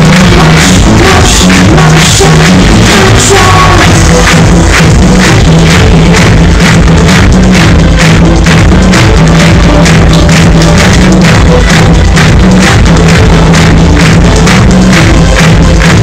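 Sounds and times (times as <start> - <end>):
electronic dance-pop music: 0.0 - 16.0.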